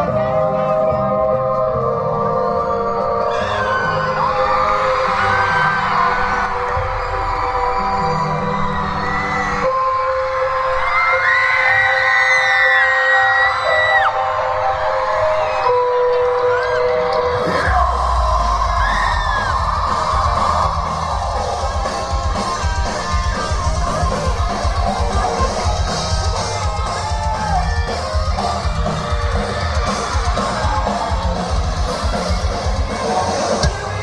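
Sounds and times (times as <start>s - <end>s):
crowd screaming and cheering: 0.0s - 34.0s
held keyboard chords: 12.9s - 34.0s.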